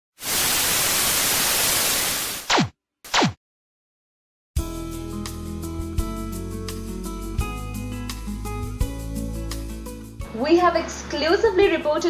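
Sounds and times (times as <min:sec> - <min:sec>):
television static hiss: 0:00.2 - 0:02.4.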